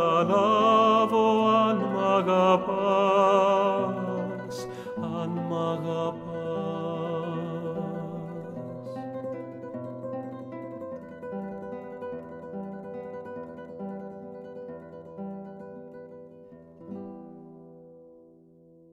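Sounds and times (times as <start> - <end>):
acoustic guitar plucking: 0.0 - 18.9.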